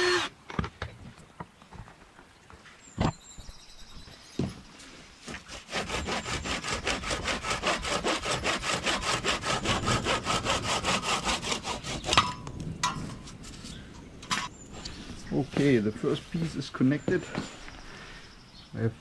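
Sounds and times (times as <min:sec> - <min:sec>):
hand saw cutting wood: 0:05.3 - 0:12.4.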